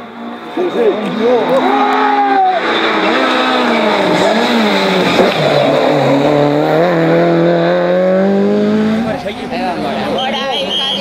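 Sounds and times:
rally car engine revving: 0:00.0 - 0:10.2.

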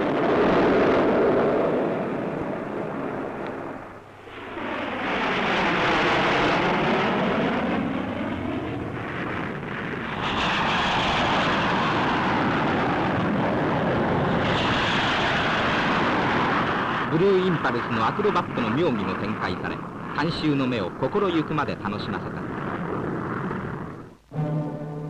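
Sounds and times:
jet fighters flying past: 0:00.0 - 0:25.0.

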